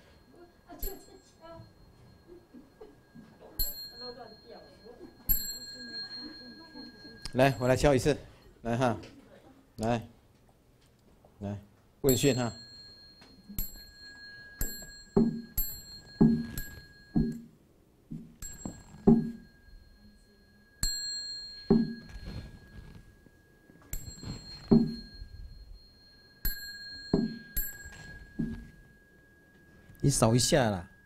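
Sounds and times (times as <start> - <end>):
small bell ringing: 0.0 - 8.7, 12.0 - 17.6, 18.4 - 31.0.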